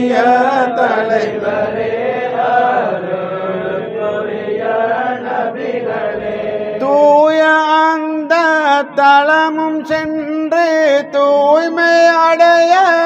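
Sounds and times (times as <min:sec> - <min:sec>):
men chanting together: 0:00.0 - 0:07.0.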